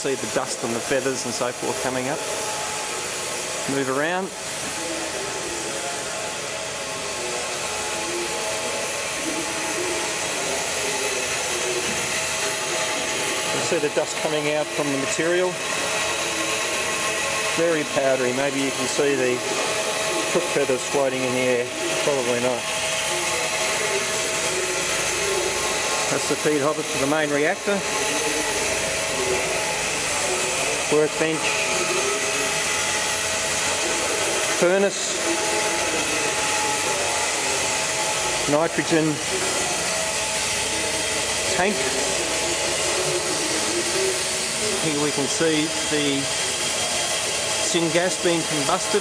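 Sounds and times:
machinery hiss and hum: 0.0 - 49.0.

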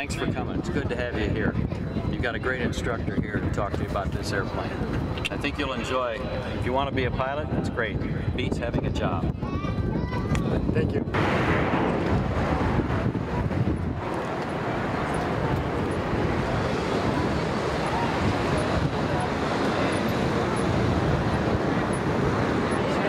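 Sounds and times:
vehicle rumble: 11.2 - 23.0.

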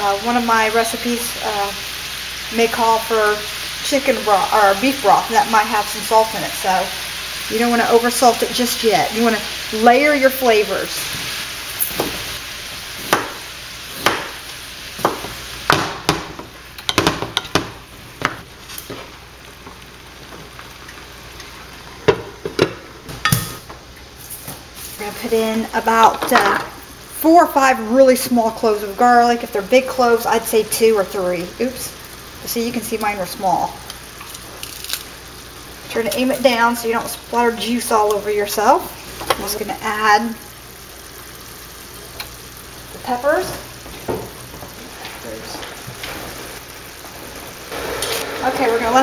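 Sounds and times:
meat sizzling in a skillet: 0.0 - 49.0.

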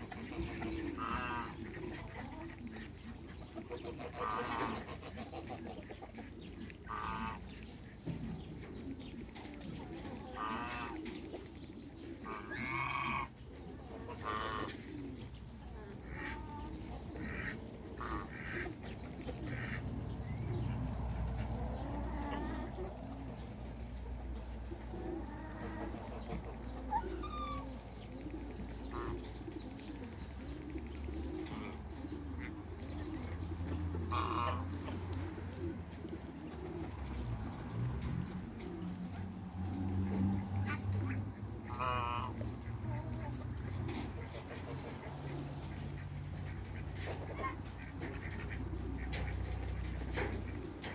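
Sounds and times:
waterfowl calling: 0.0 - 2.9, 6.8 - 7.5, 10.3 - 11.1, 13.9 - 14.8, 16.1 - 20.6, 25.1 - 28.1, 28.8 - 29.9, 31.1 - 35.6, 40.4 - 50.9.

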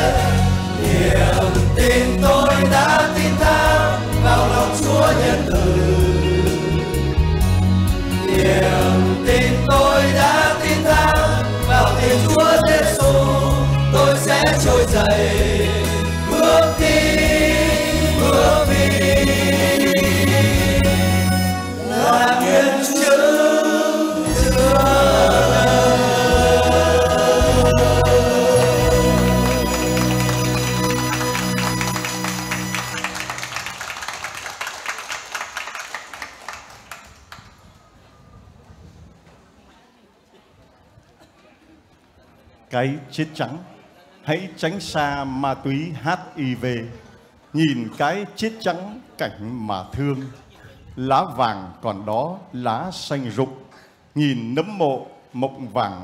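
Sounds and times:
group singing religious song: 0.0 - 7.4, 8.0 - 32.6
backing track with bass line: 0.0 - 22.2, 24.3 - 33.2
large crowd clapping: 27.1 - 37.8.

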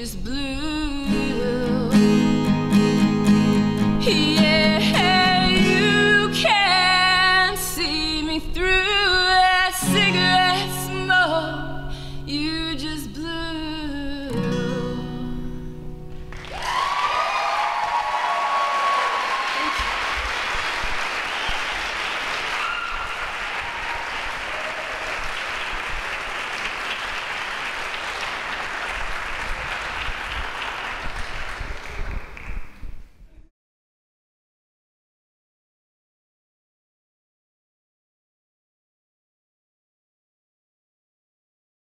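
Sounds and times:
woman singing: 0.0 - 2.5, 3.8 - 15.6
acoustic guitar chord: 1.1 - 7.8, 9.8 - 16.3
audience applause: 16.2 - 32.8
audience whooping: 16.3 - 32.4.

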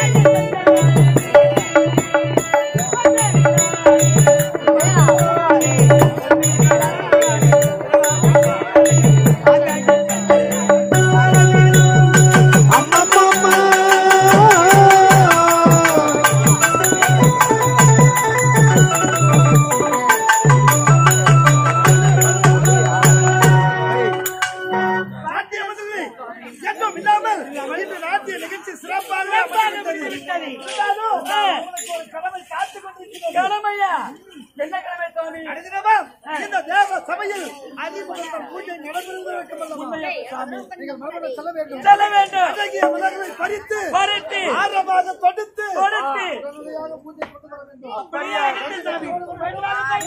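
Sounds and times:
actors speaking dialogue: 25.1 - 50.0.

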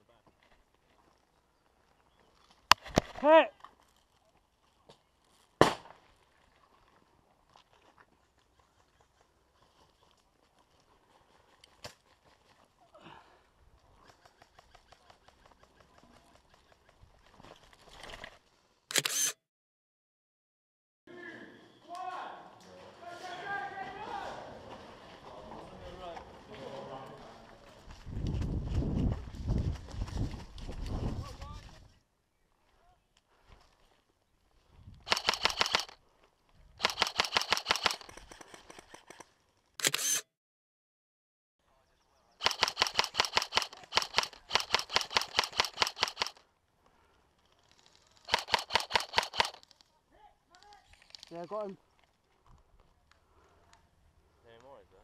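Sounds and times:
airsoft rifle firing full-auto: 35.1 - 36.0, 36.8 - 38.1, 42.4 - 46.4, 48.3 - 49.6.

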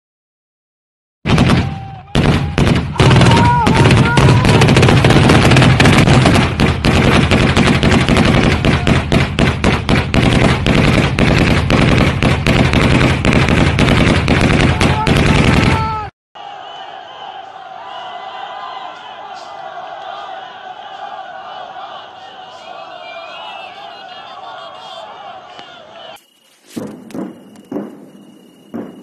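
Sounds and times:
automatic gunfire: 1.3 - 15.8
brief voices: 15.8 - 26.2.

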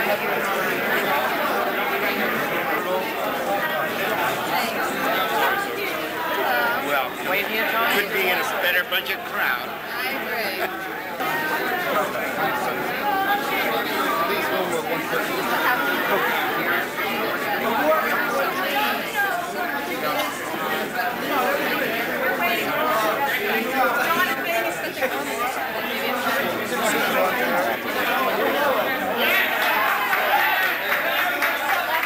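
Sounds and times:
crowd chatter: 0.0 - 32.0.

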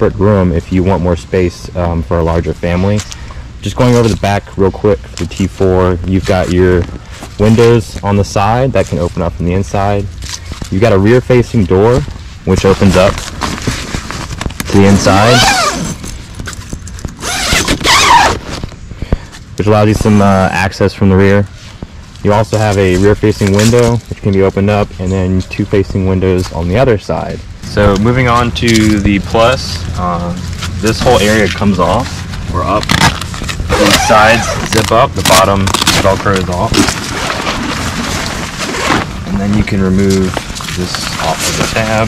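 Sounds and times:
tent zipper pulled open: 12.8 - 18.7, 32.6 - 39.4.

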